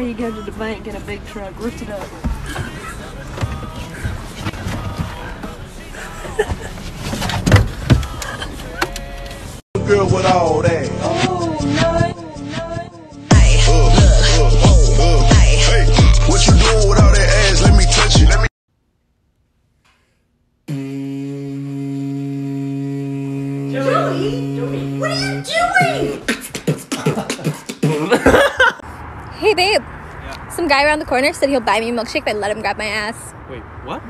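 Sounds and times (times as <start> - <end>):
electric hair clippers buzzing: 20.7 - 25.0
person speaking: 23.7 - 26.2.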